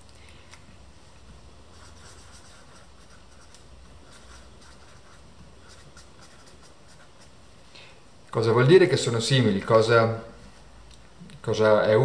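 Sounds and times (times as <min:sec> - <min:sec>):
marker writing on paper: 0:01.7 - 0:07.4.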